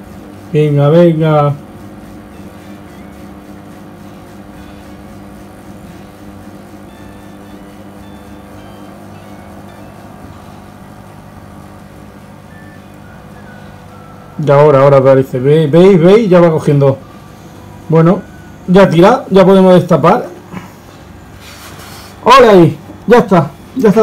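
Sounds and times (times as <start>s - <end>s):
pump electric hum: 0.0s - 24.0s.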